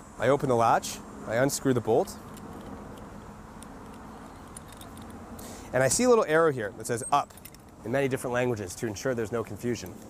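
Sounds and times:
faint metal clicks: 0:02.0 - 0:05.5.

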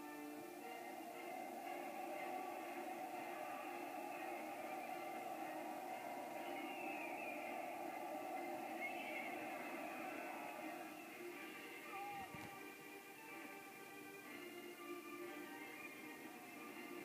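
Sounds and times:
massed war cries: 0:00.4 - 0:12.2.

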